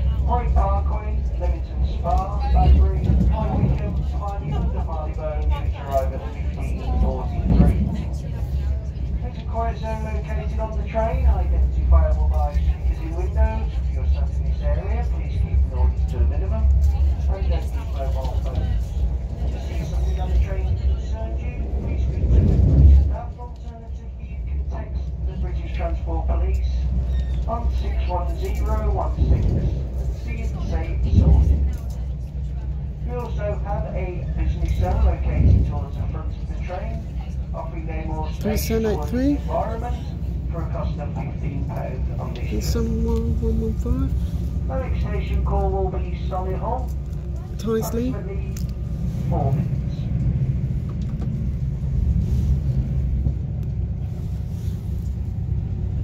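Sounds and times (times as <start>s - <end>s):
passengers talking: 0.0s - 56.0s
train rumble from inside carriage: 0.0s - 56.0s.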